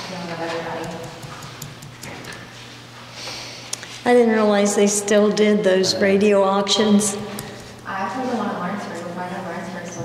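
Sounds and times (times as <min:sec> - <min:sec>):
low room hum: 0:00.0 - 0:10.0
paper and pen rustling and clicking: 0:00.4 - 0:02.5.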